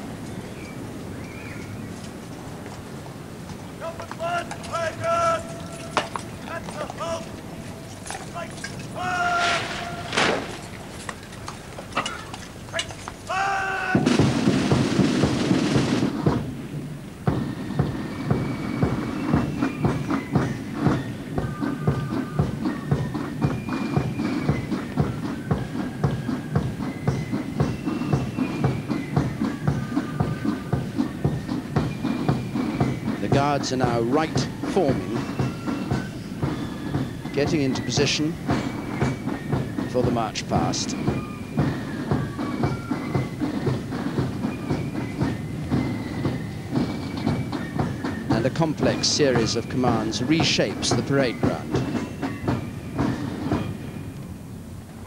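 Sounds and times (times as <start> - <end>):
military band playing a march: 2.1 - 55.0
drum roll: 3.2 - 55.0
shouted words of command: 3.8 - 7.4, 8.2 - 10.3, 12.7 - 14.1.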